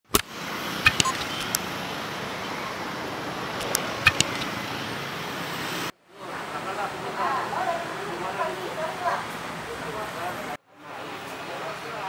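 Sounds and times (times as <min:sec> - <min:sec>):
sharp clicks: 0:00.0 - 0:01.7, 0:03.5 - 0:04.6
road traffic noise: 0:00.0 - 0:12.0
motor scooter passing: 0:00.3 - 0:05.9.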